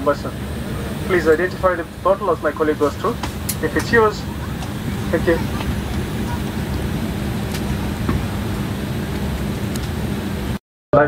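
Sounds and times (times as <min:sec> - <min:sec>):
airliner cabin air hiss: 0:00.0 - 0:10.6
low steady hum: 0:00.0 - 0:11.0.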